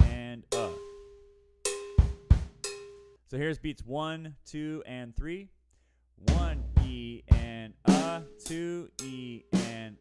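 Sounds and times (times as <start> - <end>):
cowbell strikes: 1.7 - 3.2.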